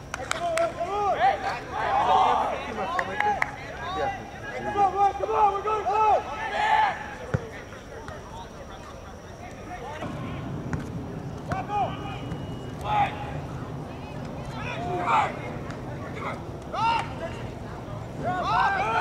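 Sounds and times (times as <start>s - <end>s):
distant players shouting: 0.0s - 8.8s, 9.4s - 19.0s
high drawn-out yells: 0.8s - 2.7s, 4.0s - 7.2s, 18.2s - 19.0s.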